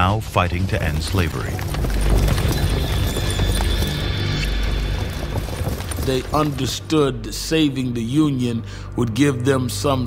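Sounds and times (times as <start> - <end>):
horse hooves clip-clopping: 0.3 - 7.0.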